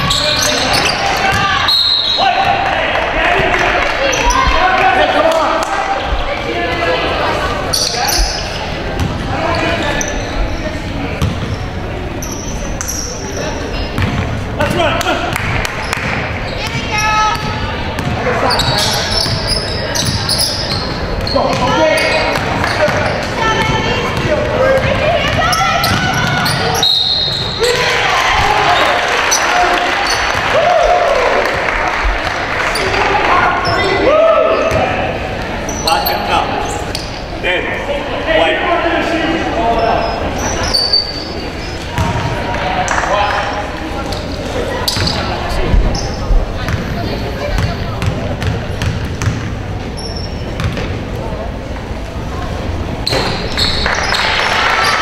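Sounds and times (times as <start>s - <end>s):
echoing voices: 0.0s - 55.0s.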